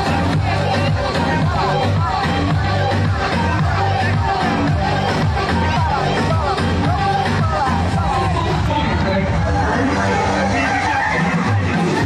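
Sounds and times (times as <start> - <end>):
loud dance music: 0.0 - 12.0
people's voices: 0.0 - 12.0.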